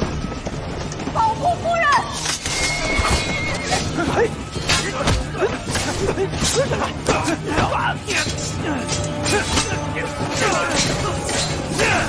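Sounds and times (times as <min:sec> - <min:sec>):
dramatic background music: 0:00.0 - 0:12.0.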